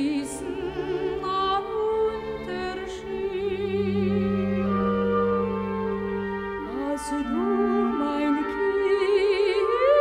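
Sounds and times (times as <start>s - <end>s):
orchestral accompaniment: 0.0s - 10.0s.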